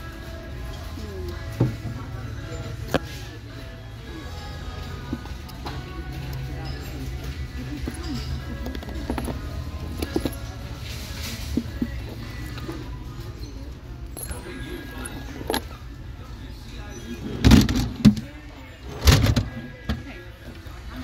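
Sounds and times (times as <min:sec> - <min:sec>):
background music: 0:00.0 - 0:21.0
voices: 0:00.0 - 0:21.0
purses rustling and clicking: 0:04.4 - 0:16.2.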